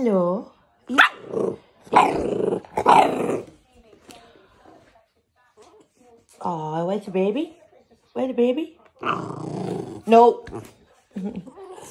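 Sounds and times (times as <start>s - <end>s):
dog growling barks: 0.9s - 3.5s, 9.0s - 10.7s.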